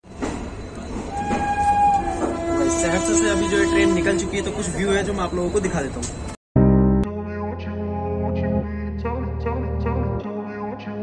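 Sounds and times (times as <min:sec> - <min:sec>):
train rumbling: 0:00.0 - 0:06.4
train horn: 0:01.1 - 0:04.8.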